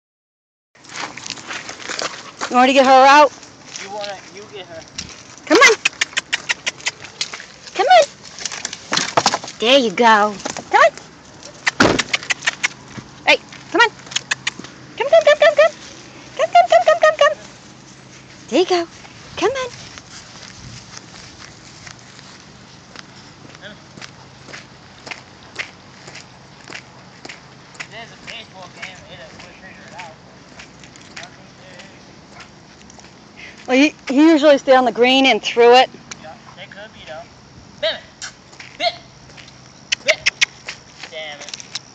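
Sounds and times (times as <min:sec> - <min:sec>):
footsteps on gravel: 0:00.8 - 0:34.4, 0:38.5 - 0:39.8, 0:40.4 - 0:41.9.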